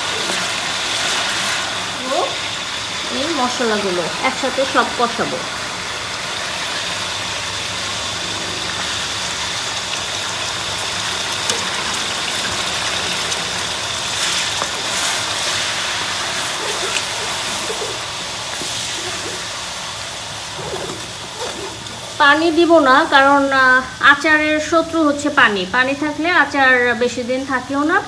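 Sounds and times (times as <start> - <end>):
spices sizzling in hot oil: 0.0 - 28.0.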